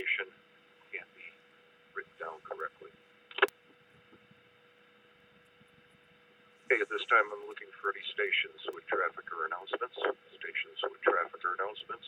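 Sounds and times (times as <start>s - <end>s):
faint electrical hum: 0.0s - 12.0s
radio burst with sharp click: 3.3s - 3.6s.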